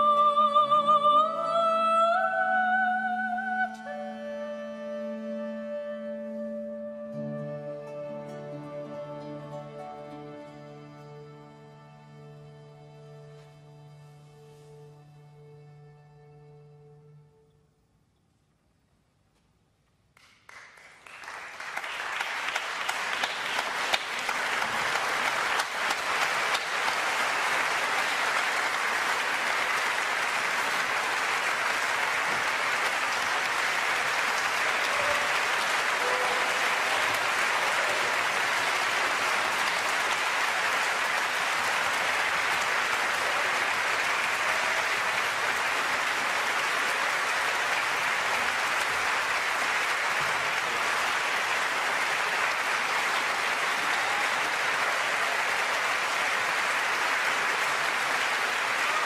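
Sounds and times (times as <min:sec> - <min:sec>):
audience applauding: 0:20.2 - 0:59.0.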